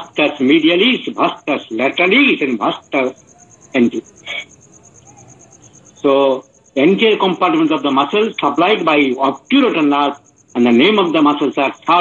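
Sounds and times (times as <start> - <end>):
man's voice: 0.0 - 3.2, 3.8 - 4.5, 6.0 - 12.0
faint high-pitched pulsing chirp: 0.0 - 12.0.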